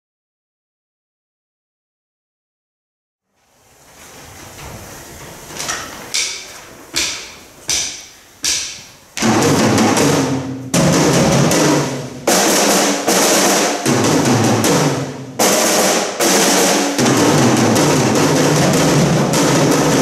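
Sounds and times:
drum kits playing rolls: 3.8 - 20.0.

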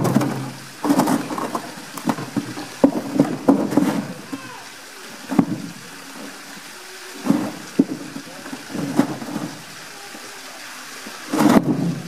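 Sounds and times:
knocks and thuds: 0.0 - 4.4, 5.3 - 5.8, 7.2 - 9.7, 11.3 - 12.0
water sloshing: 0.0 - 12.0.

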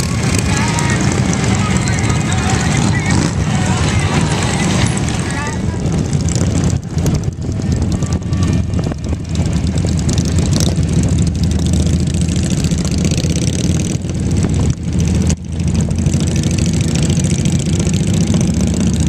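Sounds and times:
motorcycle engines rumbling: 0.0 - 19.0.

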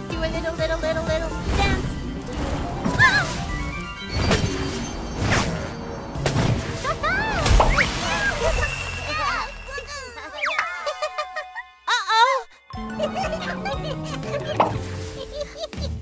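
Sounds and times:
cartoon music: 6.8 - 16.0.

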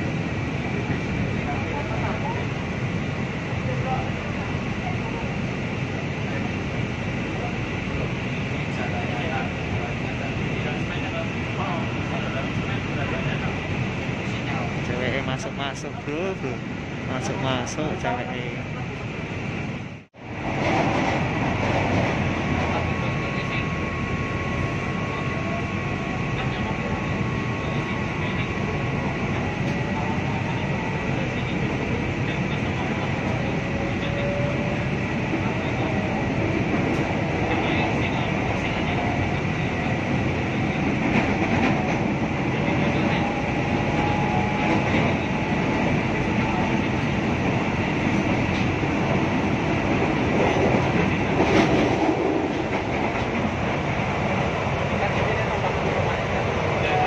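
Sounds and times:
train wheels on rails: 20.3 - 25.3, 26.4 - 57.0
train rattle: 20.3 - 57.0.

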